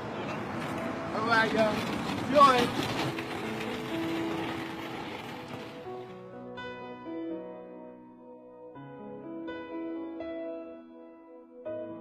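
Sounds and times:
city street traffic: 0.0 - 6.1.

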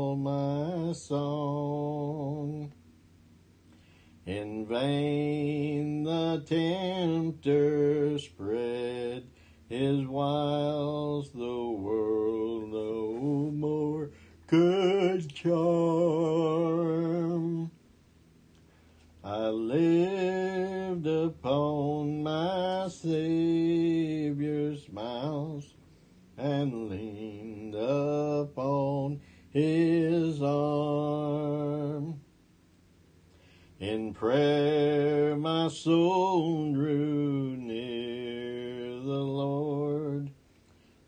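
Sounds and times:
man singing hymn unaccompanied: 0.0 - 2.8, 4.2 - 17.8, 19.2 - 32.3, 33.8 - 40.4.

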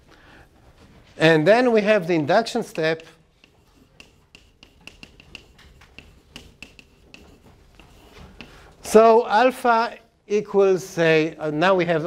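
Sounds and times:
chalk tapping on blackboard: 2.3 - 9.0.

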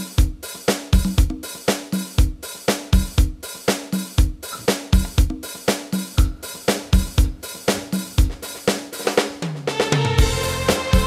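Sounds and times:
drum kit beat: 0.0 - 11.0.

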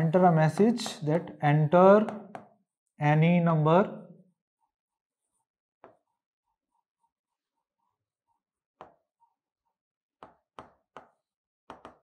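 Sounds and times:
stylus scratching on whiteboard: 5.0 - 9.8.

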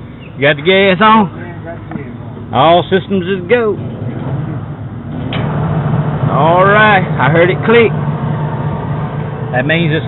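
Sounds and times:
gas dryer humming: 4.3 - 10.0.

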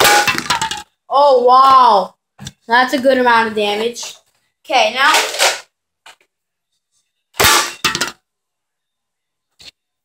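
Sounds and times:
dart hitting metal can: 0.0 - 0.9, 7.4 - 8.2.

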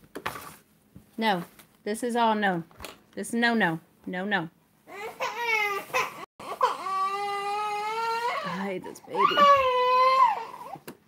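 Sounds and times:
young child crying: 4.9 - 10.8.

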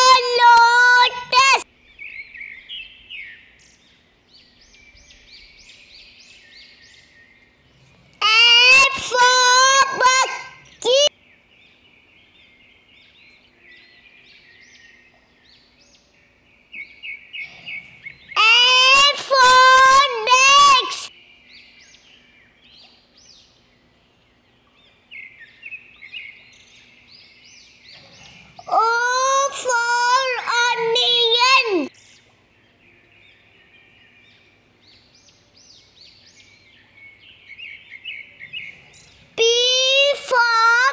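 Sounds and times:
child singing or calling out: 0.0 - 1.7, 8.2 - 11.1, 18.4 - 21.1, 28.6 - 31.9, 39.4 - 40.9
outdoor ambience: 0.0 - 40.9
small birds chirping: 0.0 - 40.9.

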